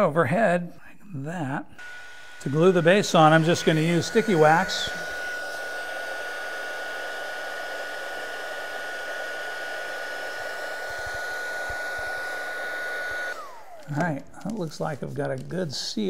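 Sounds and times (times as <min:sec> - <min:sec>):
fan motor whine: 0:01.8 - 0:14.6
heat gun running: 0:01.8 - 0:16.0.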